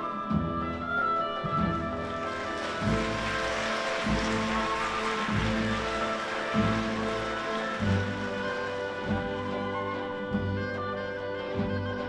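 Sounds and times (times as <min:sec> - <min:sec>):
orchestra playing sustained chords: 0:02.0 - 0:11.3
bright rustling wash: 0:02.2 - 0:09.8.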